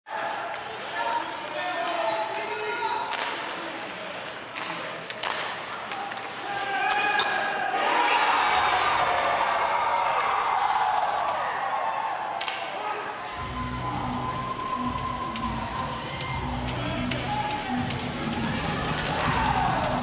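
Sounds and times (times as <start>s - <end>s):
hockey sticks and puck clacking: 0.4s - 7.5s, 12.4s - 12.7s
crowd cheering: 6.5s - 20.0s.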